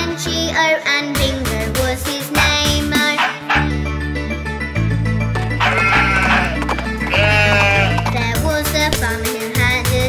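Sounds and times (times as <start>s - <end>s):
bouncy children's song: 0.0s - 4.0s, 5.5s - 10.0s
cartoon sheep bleats: 5.6s - 8.2s.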